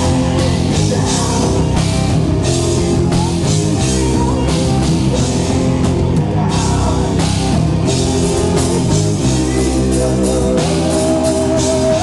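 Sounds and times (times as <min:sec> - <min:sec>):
distorted electric guitars: 0:00.0 - 0:12.0
drum kit: 0:00.0 - 0:12.0.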